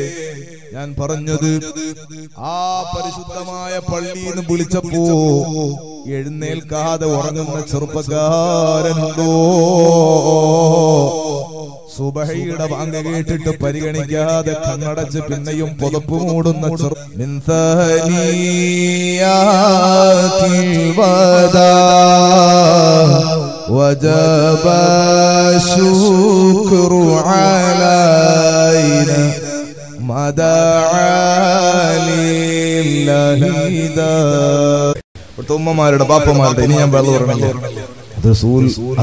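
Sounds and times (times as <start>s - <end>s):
man chanting melodically: 0.0s - 39.0s.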